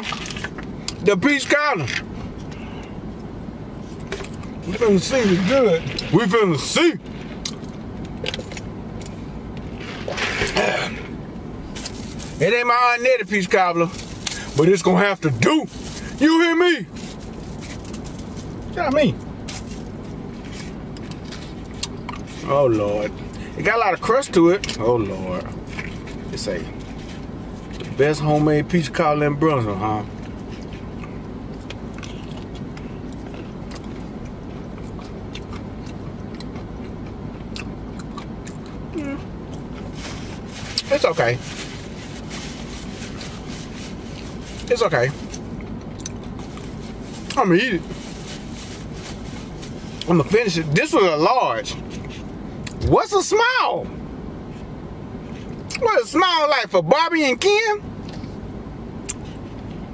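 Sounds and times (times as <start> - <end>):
vehicle cabin hum: 0.0 - 59.9
man chewing food: 7.1 - 12.4, 19.6 - 22.4, 25.4 - 28.0, 30.1 - 40.8, 45.2 - 47.4.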